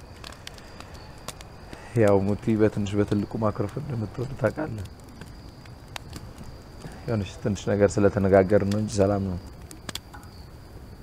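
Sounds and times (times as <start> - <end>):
man speaking: 1.8 - 4.9, 7.0 - 9.4.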